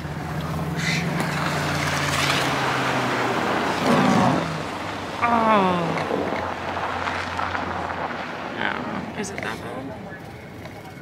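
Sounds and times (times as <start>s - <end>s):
broad rushing noise: 0.0s - 9.2s.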